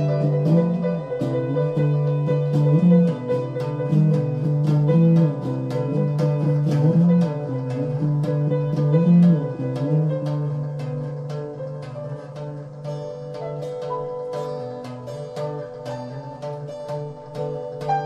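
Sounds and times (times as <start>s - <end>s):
live instrumental rock jam: 0.0s - 18.0s
picked guitar notes: 0.0s - 18.0s.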